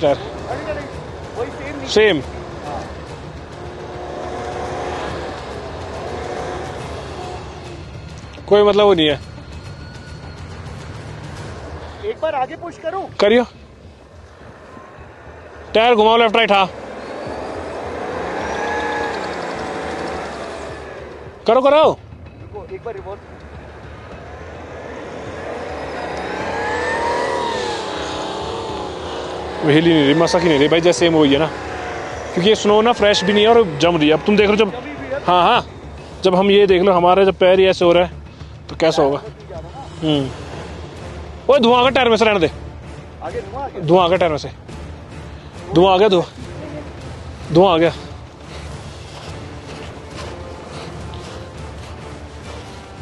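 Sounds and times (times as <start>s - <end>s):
car engine revving under load: 0.0s - 43.7s, 46.3s - 53.0s
wheels spinning in snow: 14.2s - 21.8s, 23.1s - 37.9s, 47.8s - 53.0s.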